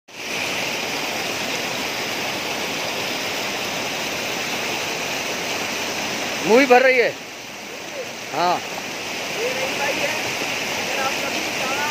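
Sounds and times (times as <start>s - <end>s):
stream cascading over rocks: 0.1s - 11.9s.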